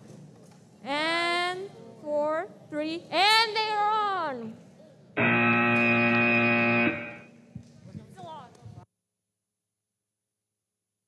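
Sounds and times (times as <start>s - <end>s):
buzzy horn tone: 5.2s - 7.4s.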